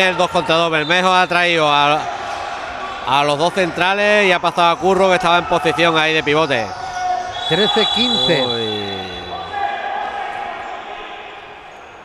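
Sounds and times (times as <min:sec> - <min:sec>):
court noise: 0:07.2 - 0:11.8.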